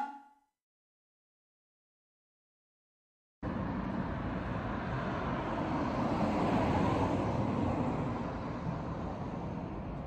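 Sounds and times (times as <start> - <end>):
street traffic noise: 3.4 - 10.0.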